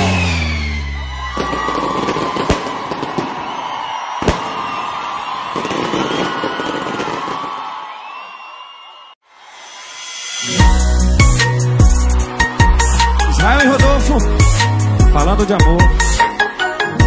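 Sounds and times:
skyrockets whistling and crackling: 0.0s - 10.6s
sharp firework bangs: 1.3s - 7.6s.

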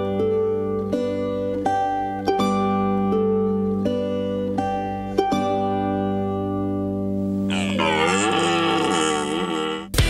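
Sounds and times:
plucked-string music: 0.0s - 10.0s
red deer stag roaring: 7.5s - 10.0s.

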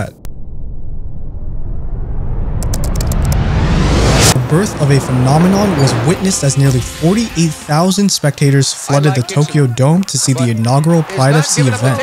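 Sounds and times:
cinematic riser rushing noise: 0.2s - 7.8s
click: 2.6s - 3.4s.

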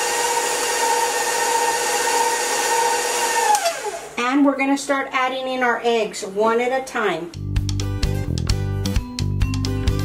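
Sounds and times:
stand mixer motor whining: 0.0s - 4.2s.

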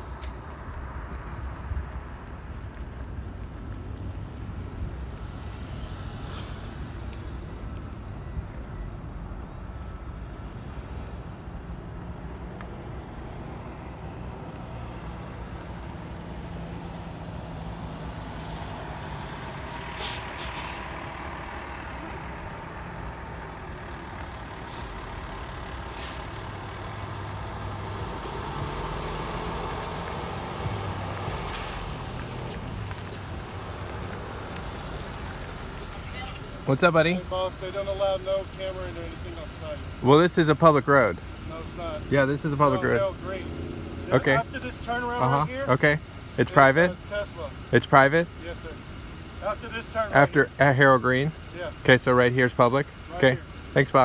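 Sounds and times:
truck engine rumble: 0.0s - 54.0s
short sharp hisses: 20.0s - 20.9s, 24.0s - 25.1s, 25.7s - 26.4s.

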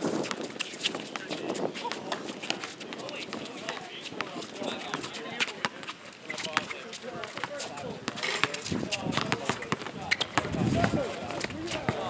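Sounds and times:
sneaker footfalls and scuffs: 0.0s - 12.0s
players calling out: 1.1s - 12.0s.

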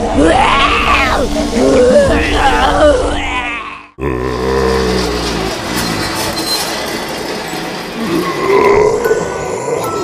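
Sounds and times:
warbling ghoulish voice: 0.0s - 6.3s, 8.0s - 10.0s.

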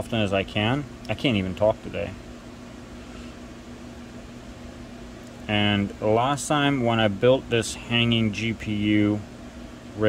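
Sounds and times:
fans humming: 0.0s - 10.0s.

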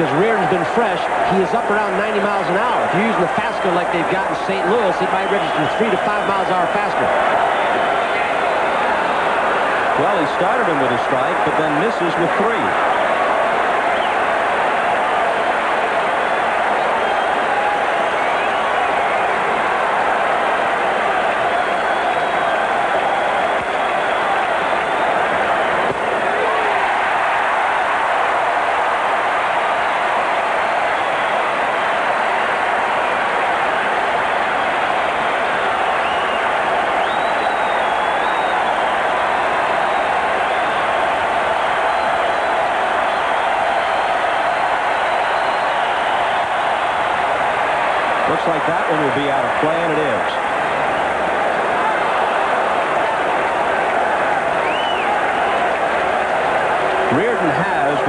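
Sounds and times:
large stadium crowd din: 0.0s - 58.0s.

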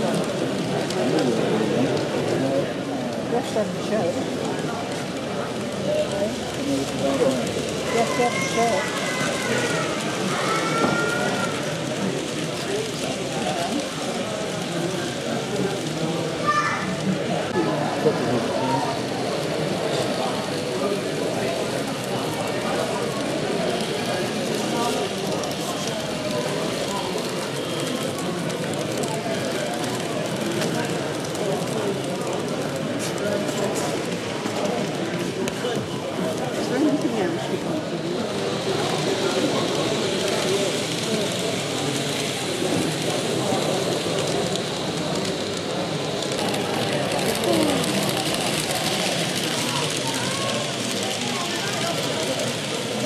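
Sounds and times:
crowd chatter: 0.0s - 53.0s.

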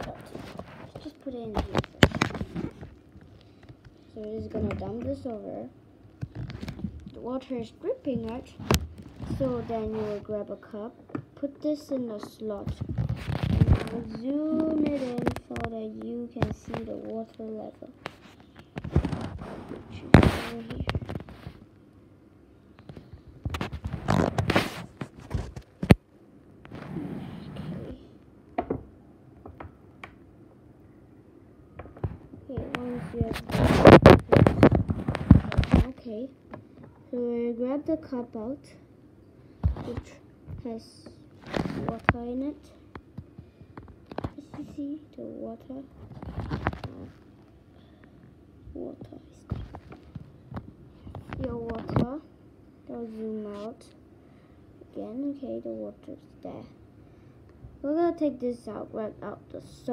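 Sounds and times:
rubbing and rustling: 0.0s - 21.7s, 22.8s - 26.0s, 31.8s - 36.2s, 39.6s - 47.6s, 48.7s - 52.2s.

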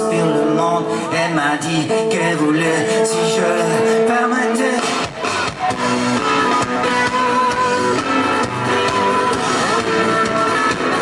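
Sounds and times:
electric bass guitar: 0.0s - 11.0s
electric guitar: 0.0s - 11.0s.

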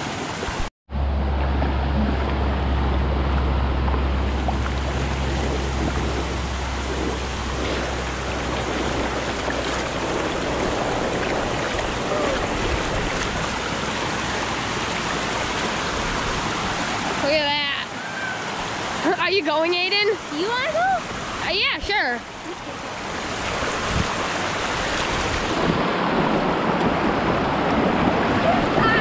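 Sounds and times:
river water rushing over rocks: 0.0s - 29.0s
water splashing: 0.0s - 29.0s
low rumble: 0.9s - 14.7s.

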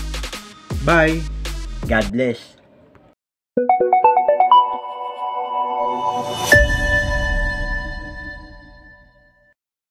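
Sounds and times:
electronic jingle rising notes: 3.6s - 9.2s.

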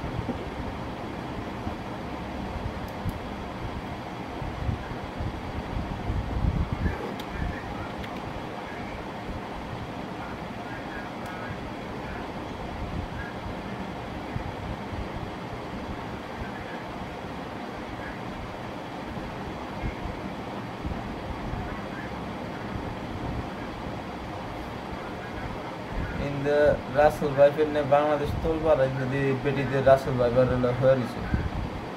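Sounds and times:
steady hum and hiss: 0.0s - 31.9s
faint distant voices: 6.6s - 31.9s.

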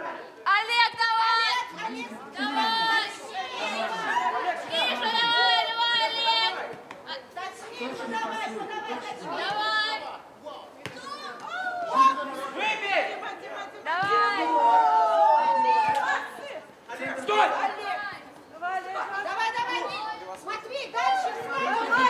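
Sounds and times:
voices shouting and talking: 0.0s - 22.0s.

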